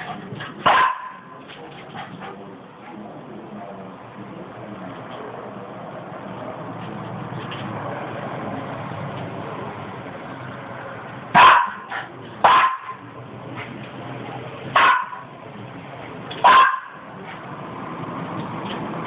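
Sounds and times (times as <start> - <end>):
dog barking: 0.6 - 1.4, 11.3 - 13.1, 14.8 - 15.3, 16.4 - 17.2.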